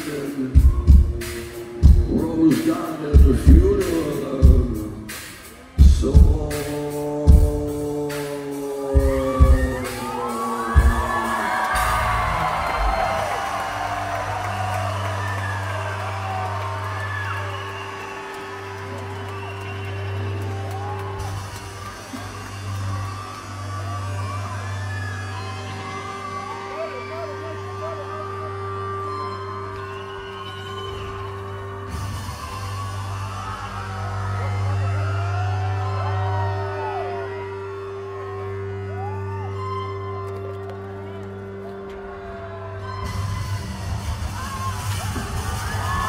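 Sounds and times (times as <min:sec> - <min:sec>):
crowd cheering and whistling: 0:00.0 - 0:07.1, 0:07.9 - 0:46.0
rock band playing loud hits: 0:00.0 - 0:17.2.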